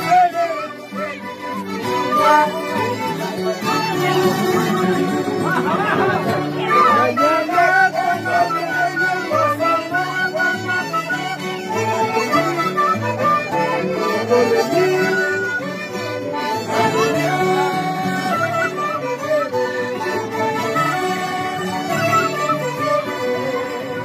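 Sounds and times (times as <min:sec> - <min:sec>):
plucked mandolin: 0:00.0 - 0:24.0
side-blown cane flute: 0:00.0 - 0:24.0
violins playing melody: 0:00.0 - 0:24.0.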